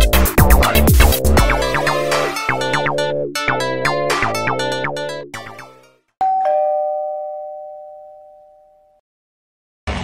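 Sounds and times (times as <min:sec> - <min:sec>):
ding-dong doorbell chime: 0:06.2 - 0:09.0.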